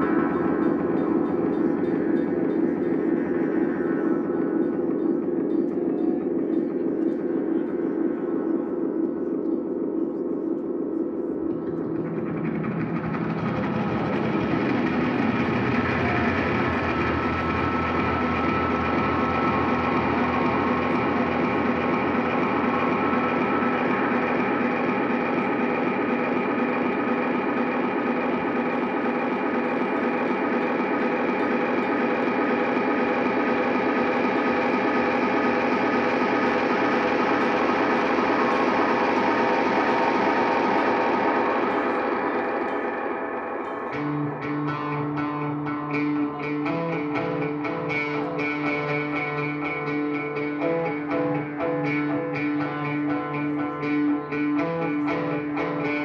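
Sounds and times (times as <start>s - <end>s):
distorted guitar drone: 0.0s - 56.0s.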